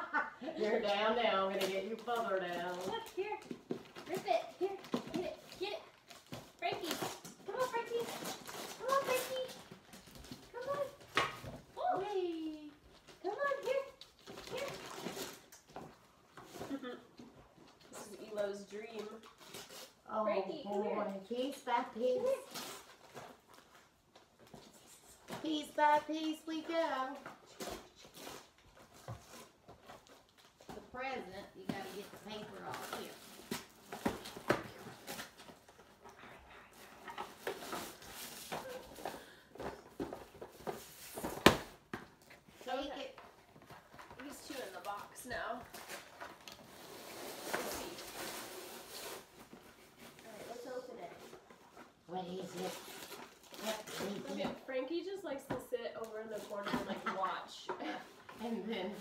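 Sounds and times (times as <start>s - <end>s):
women talking: 0.4s - 3.5s, 6.6s - 9.6s, 11.8s - 14.8s, 17.9s - 19.2s, 42.6s - 43.2s, 44.2s - 45.7s, 53.6s - 59.0s
paper crinkling and ripping: 52.4s - 54.4s.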